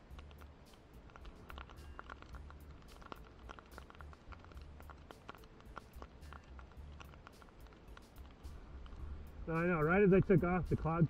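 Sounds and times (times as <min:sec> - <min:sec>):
small irregular clicks: 0:00.0 - 0:11.0.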